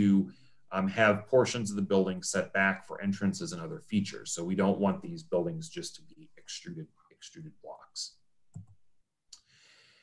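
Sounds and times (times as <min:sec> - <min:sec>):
faint mouse click: 0:08.5 - 0:09.5
soft intake of breath: 0:09.4 - 0:10.0.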